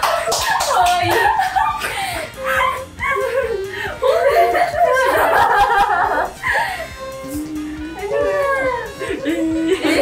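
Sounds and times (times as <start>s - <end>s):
background music: 0.0s - 10.0s
girls laughing: 0.0s - 10.0s
girls crying and whimpering: 0.8s - 10.0s.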